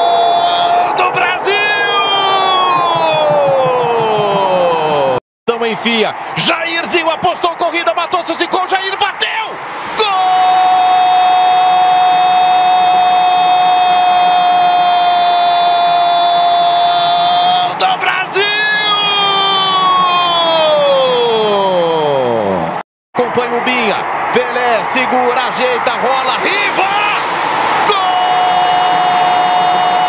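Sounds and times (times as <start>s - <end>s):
commentator shouting goal cry: 0.0s - 5.2s
crowd noise: 0.0s - 14.9s, 15.6s - 30.0s.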